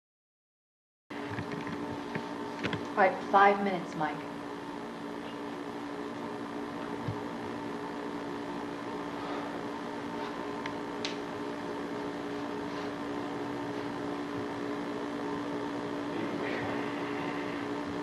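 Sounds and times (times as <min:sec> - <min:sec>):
videotape hum and hiss: 0:01.2 - 0:18.0.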